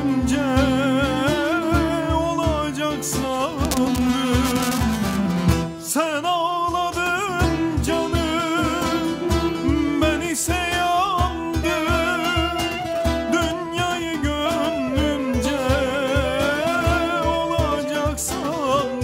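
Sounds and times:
folk ensemble playing: 0.0 - 6.1, 6.9 - 19.0.

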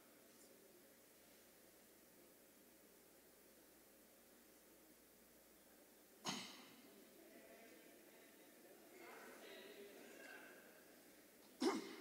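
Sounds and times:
faint voices: 5.6 - 12.0.

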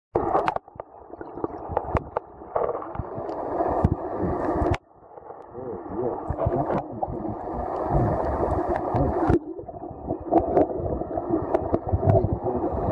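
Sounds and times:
muffled underwater noise: 0.2 - 12.9.

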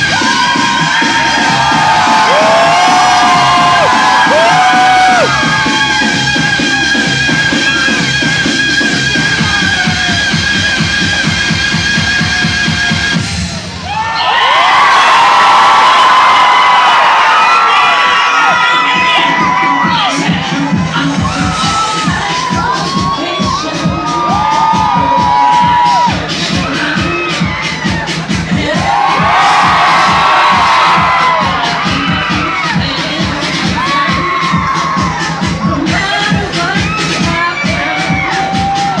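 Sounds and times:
crowd screaming and cheering: 0.0 - 39.0
loud music with steady beat: 0.0 - 39.0.

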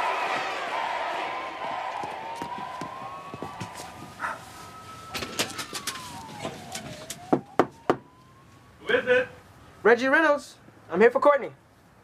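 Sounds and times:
siren wailing: 1.3 - 10.1.

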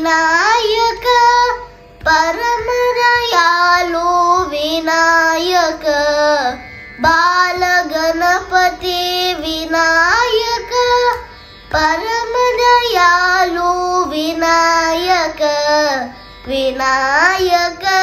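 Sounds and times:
boy singing devotional song: 0.0 - 18.0.

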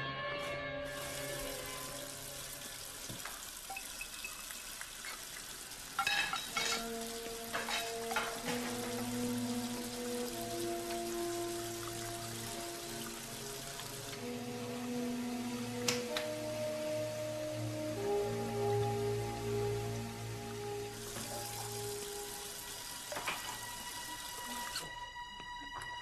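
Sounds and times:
soft background music: 0.0 - 26.0
tap water running into sink: 0.9 - 16.6, 17.8 - 25.6
clinks: 6.0 - 8.9.

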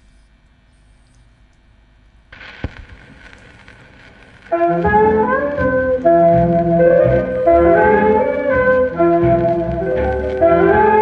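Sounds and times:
record surface hiss and crackle: 0.0 - 11.0
turntable rumble: 0.0 - 11.0.

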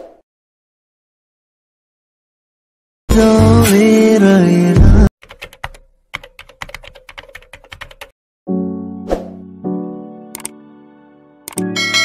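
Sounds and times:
music: 3.1 - 5.1, 8.5 - 12.0
computer keyboard typing: 5.2 - 8.1, 10.4 - 10.6, 11.5 - 11.7.

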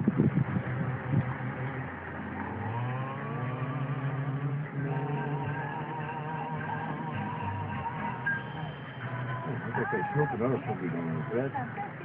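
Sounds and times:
car engine: 0.0 - 12.0
road noise: 0.0 - 12.0
music: 4.6 - 12.0.

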